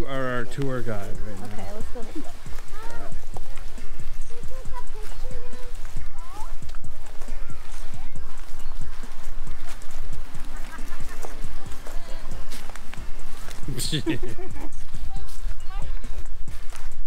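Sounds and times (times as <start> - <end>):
footsteps crunching on mulch: 0.0 - 17.0.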